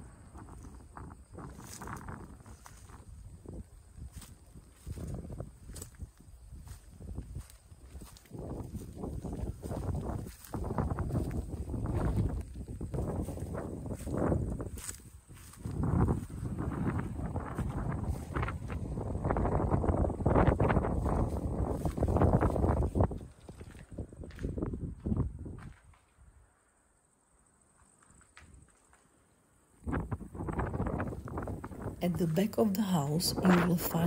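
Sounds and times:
wind gusting on microphone: 0.0s - 26.0s, 29.8s - 34.0s
footsteps over rubble: 0.4s - 19.0s, 20.8s - 26.2s
footsteps through dry grass: 0.4s - 26.0s.

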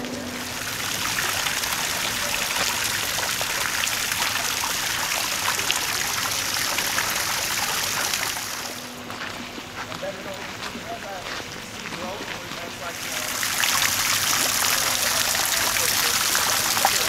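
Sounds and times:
fountain water splashing into basin: 0.0s - 8.9s, 12.1s - 17.0s.

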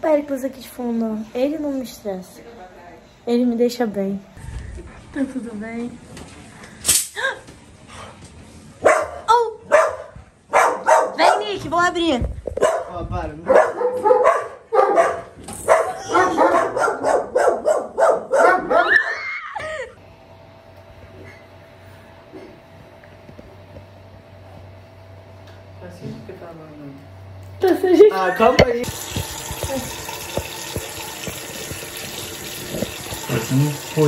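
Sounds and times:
dog barking: 8.8s - 11.6s, 12.6s - 19.1s
electric fan humming: 19.8s - 34.0s.

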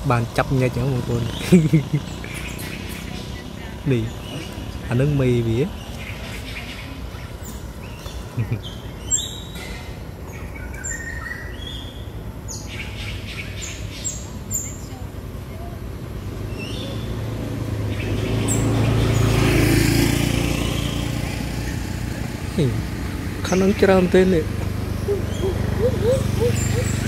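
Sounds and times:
high-pitched animal chirps: 25.0s - 27.0s.

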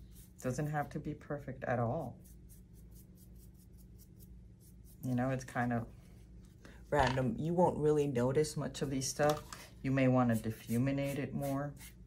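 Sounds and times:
paintbrush scratching on foam: 0.0s - 1.1s, 1.8s - 5.8s, 10.2s - 12.0s.

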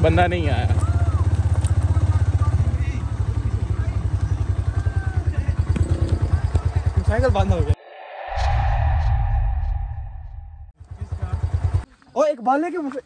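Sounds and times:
motorcycle engine low speed: 0.0s - 7.7s.

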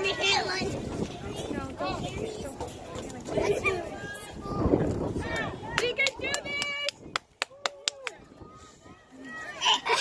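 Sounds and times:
faint voices: 0.0s - 10.0s
hand claps: 5.8s - 8.2s.

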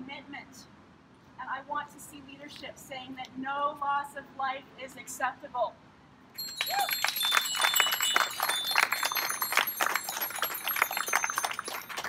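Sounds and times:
bicycle bells ringing: 6.4s - 12.0s
crowd clapping: 6.4s - 12.0s.

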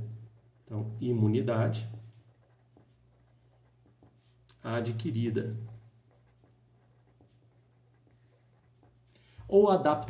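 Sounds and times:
marker writing on paper: 0.0s - 9.6s.

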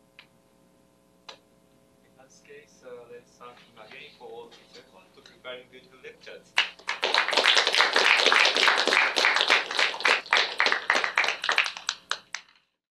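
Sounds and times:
audience applause: 6.6s - 12.6s.

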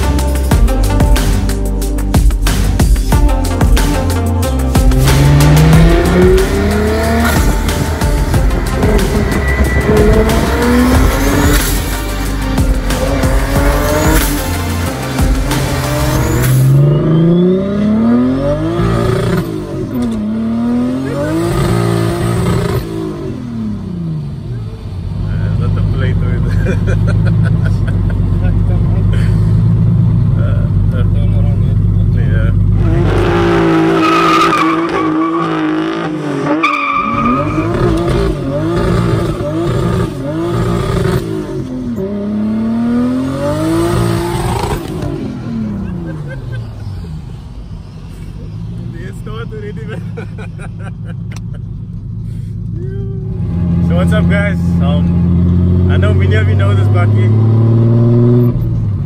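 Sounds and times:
turbocharged engine accelerating: 2.2s - 59.0s.

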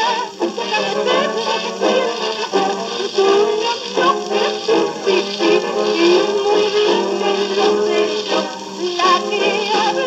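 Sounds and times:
jazz band record playing: 0.0s - 10.0s.

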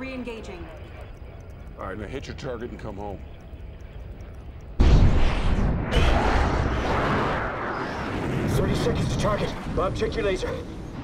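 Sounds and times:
faint low rumble: 0.0s - 11.0s
fighter jet roar: 4.8s - 11.0s.

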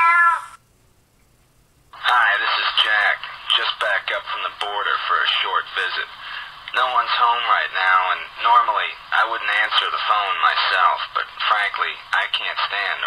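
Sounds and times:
cat meowing: 0.0s - 0.6s.

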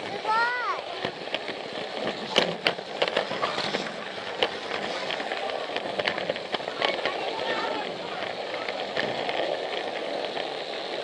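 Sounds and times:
people talking: 0.0s - 1.3s, 3.2s - 9.6s
toy train rattling on plastic track: 0.0s - 11.0s.

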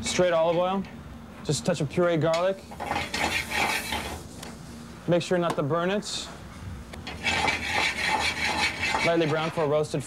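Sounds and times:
pan scraping on grate: 2.8s - 4.2s, 7.1s - 9.7s.

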